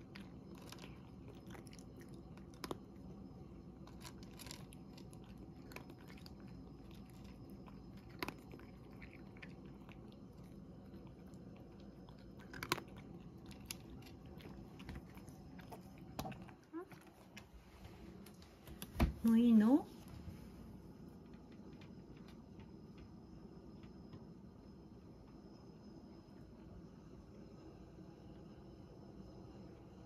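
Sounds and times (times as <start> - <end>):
cat crunching dry kibble: 0.0 - 17.5.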